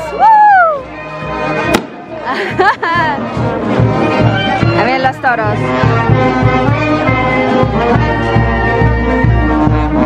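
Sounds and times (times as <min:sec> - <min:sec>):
crowd voices: 0:00.0 - 0:10.0
sharp crack: 0:01.7 - 0:02.0
brass band playing held notes: 0:03.3 - 0:10.0.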